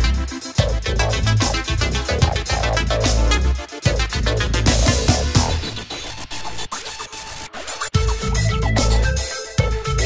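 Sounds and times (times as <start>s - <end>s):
electronic bass: 0.0s - 5.9s, 8.0s - 10.0s
scratchy high-pitched electronic texture: 1.0s - 9.0s.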